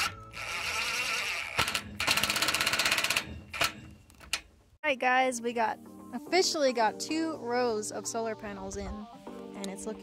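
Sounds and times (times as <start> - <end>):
impact driver whirring and hammering: 0.0 - 4.0.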